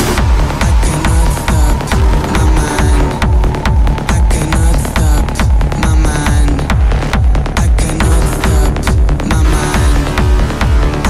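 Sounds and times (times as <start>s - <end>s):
kick drum: 0.0s - 11.0s
sustained synth chords: 0.0s - 11.0s
trance music: 0.0s - 11.0s.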